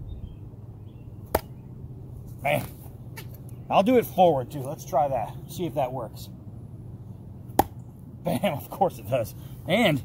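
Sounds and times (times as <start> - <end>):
steady low hum: 0.0 - 10.0
knife striking wooden log: 1.3 - 1.6, 7.6 - 7.8.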